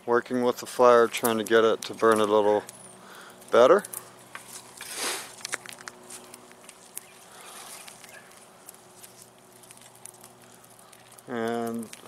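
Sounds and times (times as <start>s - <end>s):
brush and twigs crackling: 0.0s - 12.0s
twigs snapping: 1.0s - 12.0s
rustling burst: 4.2s - 8.4s.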